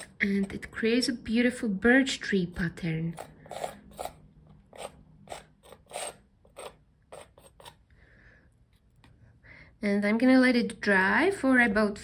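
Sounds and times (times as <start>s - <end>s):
palette knife scraping paste on canvas: 2.5s - 7.8s.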